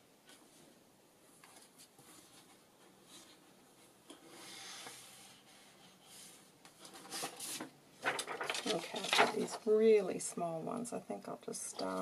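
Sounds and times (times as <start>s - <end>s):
paper and card rustling: 6.7s - 10.0s.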